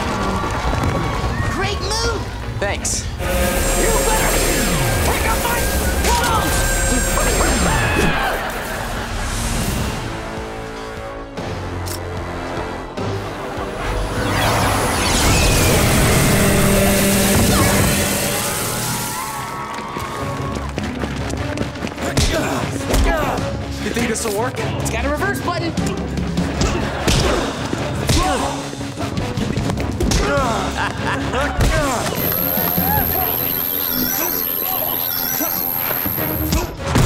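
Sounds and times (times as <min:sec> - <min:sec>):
electric zap: 0:32.2 - 0:36.8.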